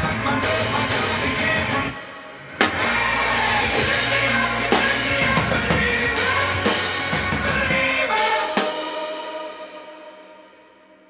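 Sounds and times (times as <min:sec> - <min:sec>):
drum kit playing: 0:00.0 - 0:10.0
rock backing track: 0:00.0 - 0:10.0.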